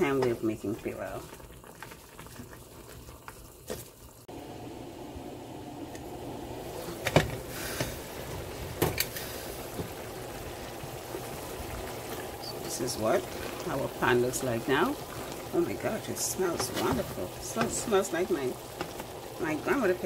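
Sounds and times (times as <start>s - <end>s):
pot bubbling: 0.0s - 20.0s.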